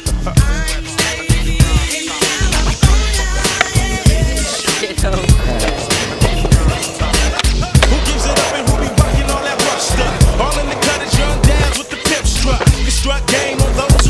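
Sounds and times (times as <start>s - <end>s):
hip hop music with rapping: 0.0s - 14.0s
skateboard clacking: 1.0s - 14.0s
skateboard wheels rolling on asphalt: 1.7s - 14.0s.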